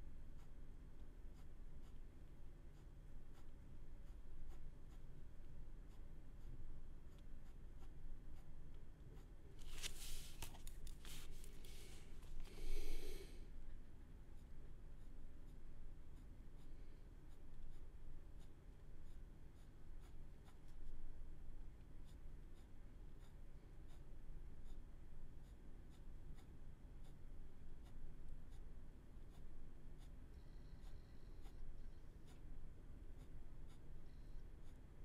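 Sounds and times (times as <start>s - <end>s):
ballpoint pen scratching paper: 2.7s - 5.1s, 5.8s - 12.4s, 17.3s - 20.9s, 22.0s - 24.8s, 29.3s - 32.5s.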